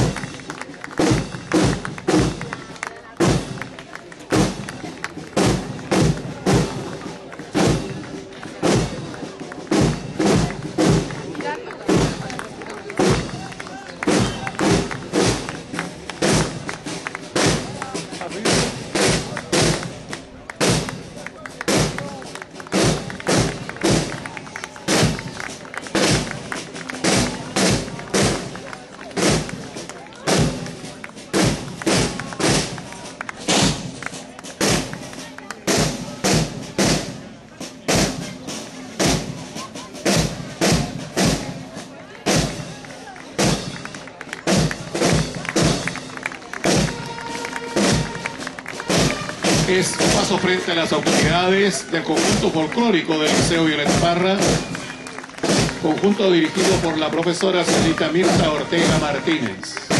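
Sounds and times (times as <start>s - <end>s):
marching snare and bass drums: 0.0s - 59.9s.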